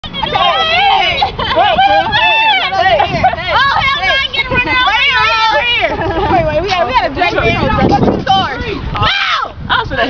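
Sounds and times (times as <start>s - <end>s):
young voices talking and calling: 0.0s - 10.0s.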